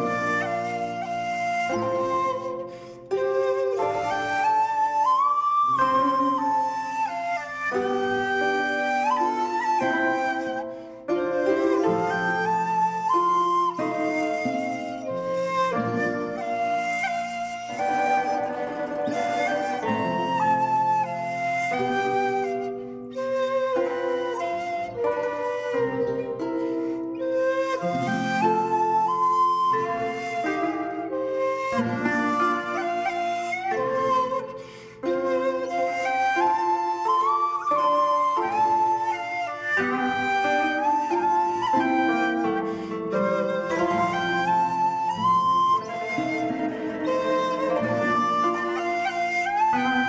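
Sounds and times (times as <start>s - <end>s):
pan flute melody: 0.0s - 50.0s
soft sustained backing: 0.0s - 50.0s.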